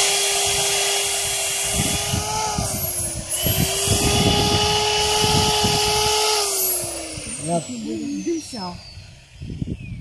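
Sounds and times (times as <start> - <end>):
electric drill spinning down: 0.0 - 10.0.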